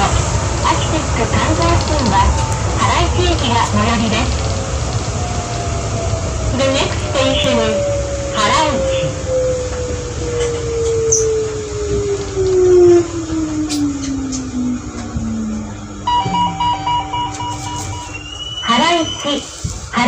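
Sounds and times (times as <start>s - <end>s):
people-mover motor whine: 0.0s - 20.0s
running rumble: 0.0s - 20.0s
electronic beep chime: 15.5s - 19.3s.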